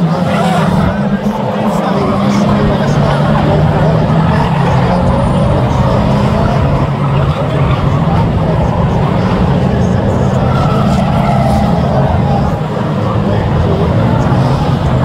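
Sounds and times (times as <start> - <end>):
racing car engines droning: 0.0 - 15.0.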